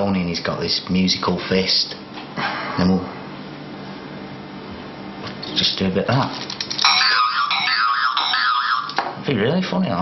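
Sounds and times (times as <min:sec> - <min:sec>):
tinny electronic toy tune: 0:06.8 - 0:09.0.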